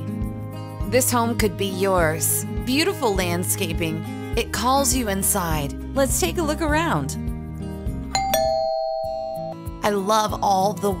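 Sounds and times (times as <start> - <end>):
two-note doorbell chime: 8.2 - 9.6.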